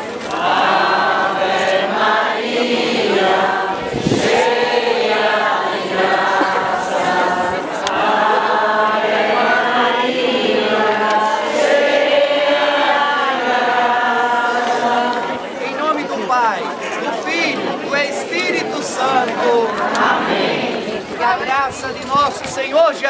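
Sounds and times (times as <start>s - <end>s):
crowd singing a hymn: 0.0s - 23.0s.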